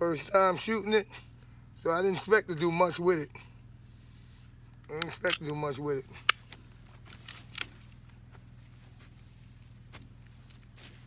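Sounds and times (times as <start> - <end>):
faint outdoor background: 0.0 - 11.0.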